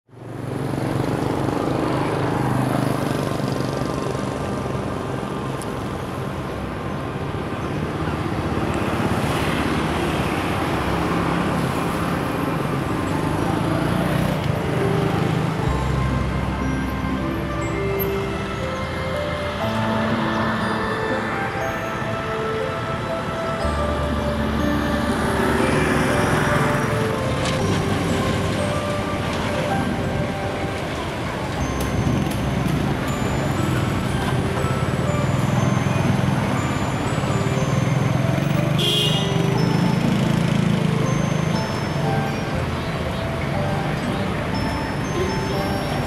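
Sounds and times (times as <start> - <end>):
cars and motorbikes passing: 0.1 - 46.0
music playing: 3.5 - 46.0.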